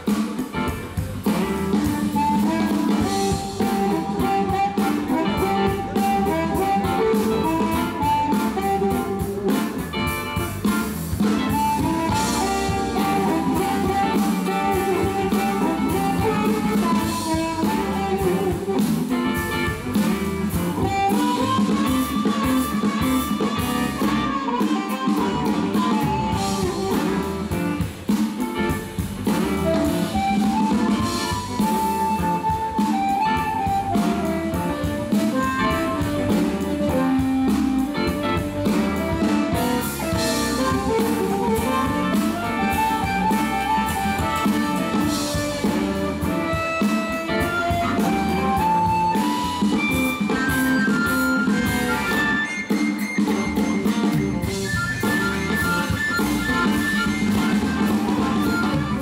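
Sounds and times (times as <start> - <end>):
amplified harmonica: 0.0 - 59.0
blues band playing: 0.0 - 59.0.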